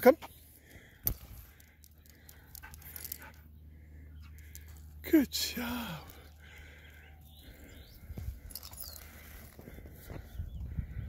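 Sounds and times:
dog leash clips rattling: 1.5 - 3.4
man calling out: 5.0 - 6.3.

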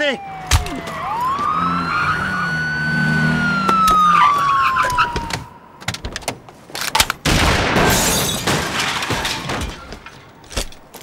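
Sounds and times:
police siren wailing: 0.0 - 5.8.

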